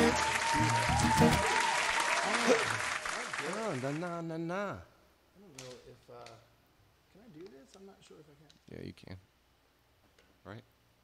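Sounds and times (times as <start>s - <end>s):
applause: 0.0s - 4.1s
men talking: 2.2s - 6.5s.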